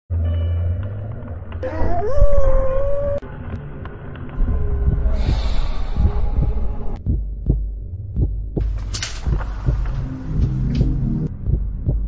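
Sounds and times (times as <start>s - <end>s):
deep hum: 0.1s - 12.0s
heartbeat thumps: 4.4s - 12.0s.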